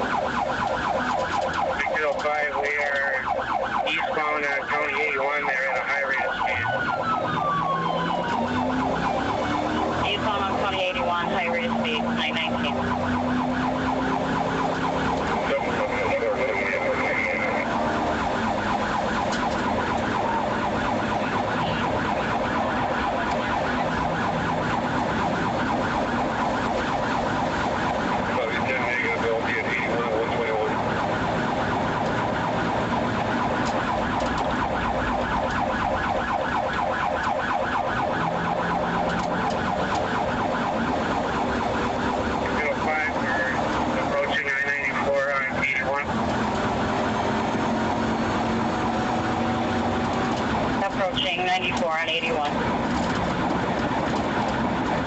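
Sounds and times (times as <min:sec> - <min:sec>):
car engine and road noise: 0:00.0 - 0:55.0
police siren warbling: 0:00.0 - 0:55.0.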